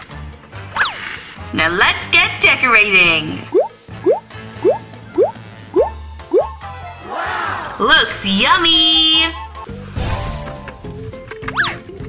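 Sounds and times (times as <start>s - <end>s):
light background music: 0.0s - 12.0s
cartoon bloop pops: 3.5s - 6.6s.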